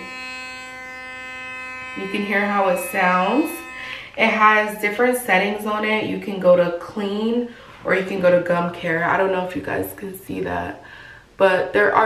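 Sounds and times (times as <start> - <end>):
electric toothbrush buzzing: 0.0 - 5.6.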